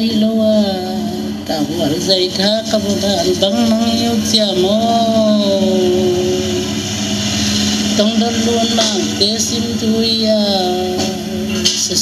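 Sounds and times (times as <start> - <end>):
steady low drone: 0.0 - 12.0
person singing long note: 3.4 - 11.4.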